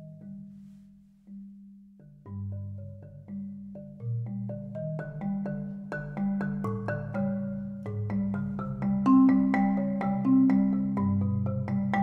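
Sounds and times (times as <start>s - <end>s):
marimba playing: 0.0s - 0.7s, 1.3s - 12.0s.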